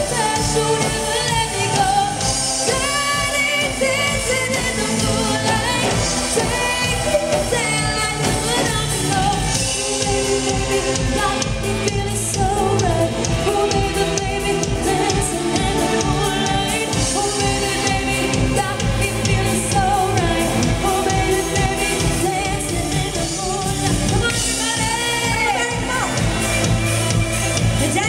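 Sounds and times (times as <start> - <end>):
live pop band playing: 0.0 - 28.0
steady drumbeat: 0.0 - 28.0
women singing lead: 0.0 - 28.0.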